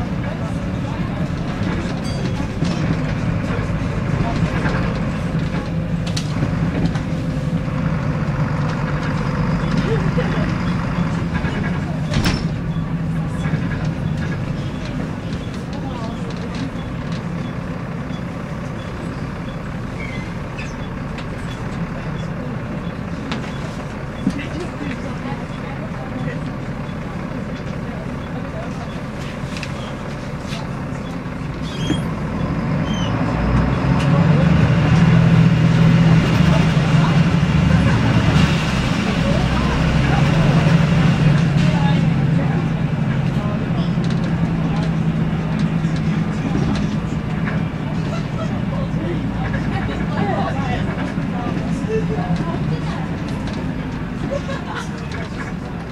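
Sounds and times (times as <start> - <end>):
bus diesel engine drone: 0.0 - 55.9.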